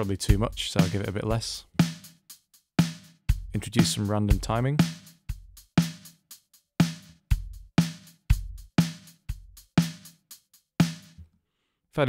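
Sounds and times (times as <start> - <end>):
drum machine beat: 0.0 - 11.3.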